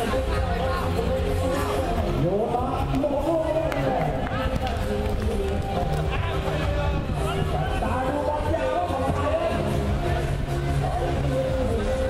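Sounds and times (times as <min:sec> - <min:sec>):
background music: 0:00.0 - 0:12.0
crowd noise: 0:00.0 - 0:12.0.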